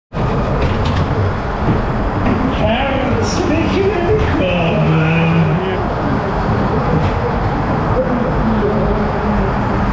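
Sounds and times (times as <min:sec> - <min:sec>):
ride car rumbling along track: 0:00.1 - 0:09.9.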